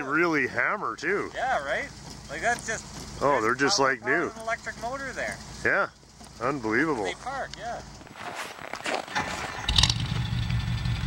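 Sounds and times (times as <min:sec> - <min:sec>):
engine idling: 0:00.0 - 0:08.1, 0:09.1 - 0:11.0.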